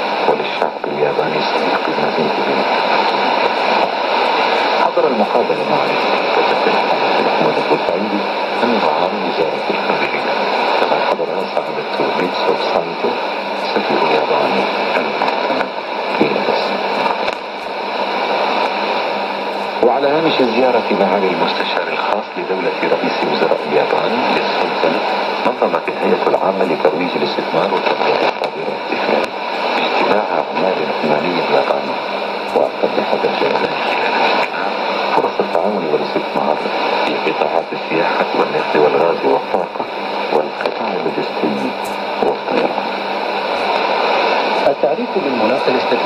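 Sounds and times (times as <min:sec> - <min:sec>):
faint radio announcer voice: 0:00.0 - 0:46.0
low steady hum: 0:00.0 - 0:46.0
radio hiss and static: 0:00.0 - 0:46.0.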